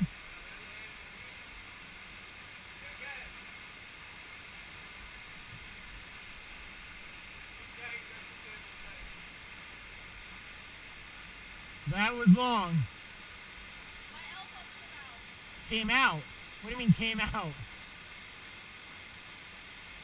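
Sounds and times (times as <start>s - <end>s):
distant waterfall rushing: 0.0s - 20.0s.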